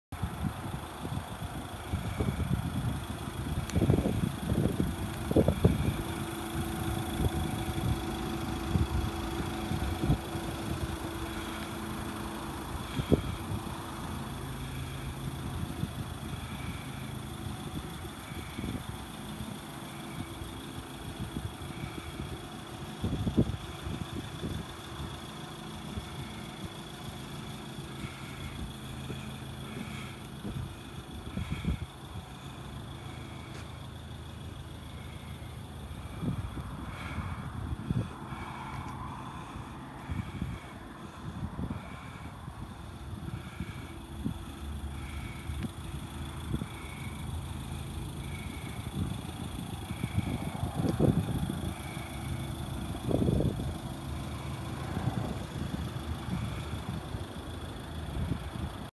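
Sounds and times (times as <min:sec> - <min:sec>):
diesel engine idling: 0:00.1 - 0:58.9.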